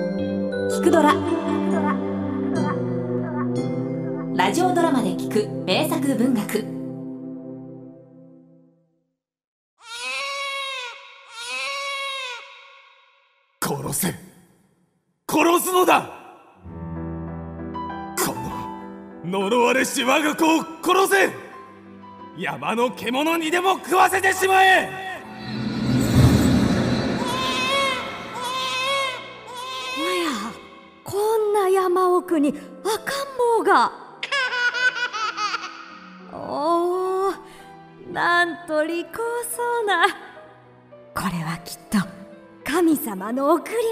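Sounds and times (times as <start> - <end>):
quiet background music: 0.0 - 8.0, 18.2 - 25.3, 27.3 - 43.9
newborn baby crying: 9.8 - 13.1, 27.2 - 30.8, 34.2 - 36.2.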